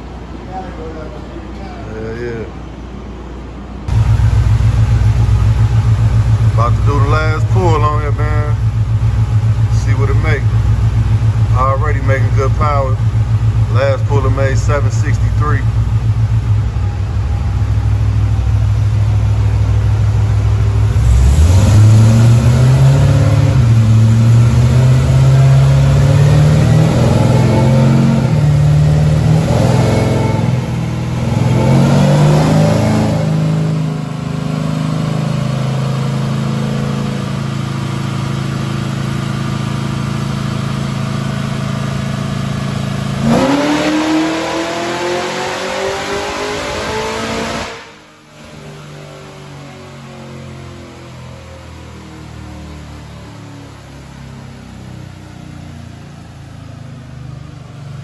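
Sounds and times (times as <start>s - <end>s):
supercharged truck engine revving: 3.9s - 57.4s.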